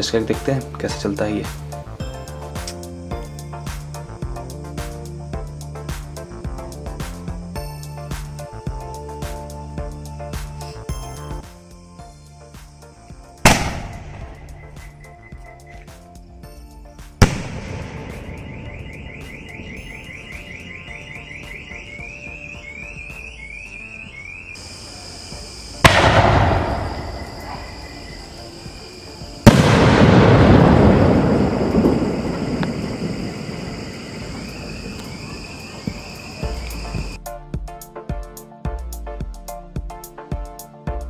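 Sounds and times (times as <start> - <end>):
firework shell bursting bang: 13.5 - 14.5, 25.8 - 27.8, 29.5 - 33.2
firework launch thump: 25.8 - 27.8, 29.5 - 33.3
fireworks sparks hissing down: 29.3 - 37.2.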